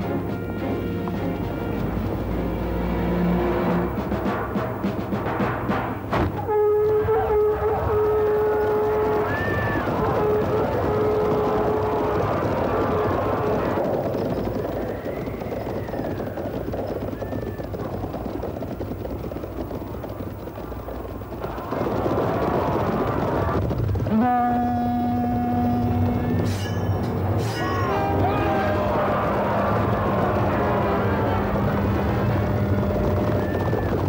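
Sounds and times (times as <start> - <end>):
cavalry horses: 0.0 - 34.0
long held note: 6.4 - 9.5, 24.1 - 29.0
soldiers shouting: 6.9 - 13.8, 27.3 - 32.4.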